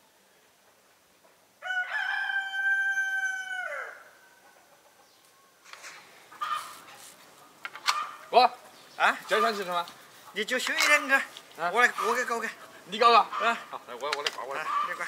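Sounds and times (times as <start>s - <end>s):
rooster crowing: 1.6s - 4.5s.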